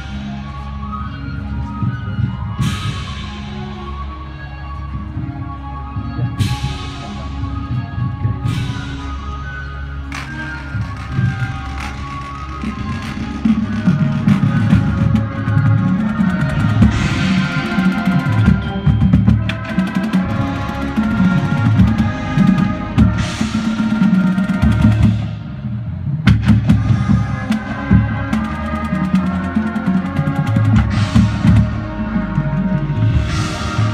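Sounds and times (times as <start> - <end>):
marching drumline: 10.0 - 33.9
brass chords: 10.1 - 33.9.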